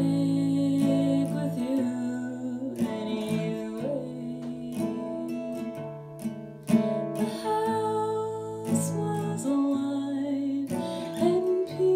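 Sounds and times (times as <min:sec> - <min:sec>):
acoustic guitar folk song: 0:00.0 - 0:11.9.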